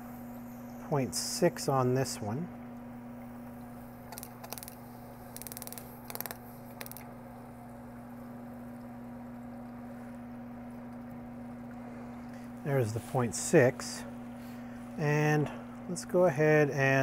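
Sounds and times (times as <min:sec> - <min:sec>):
steady low hum: 0:00.0 - 0:17.0
small metal clicks and ticks: 0:05.4 - 0:07.0.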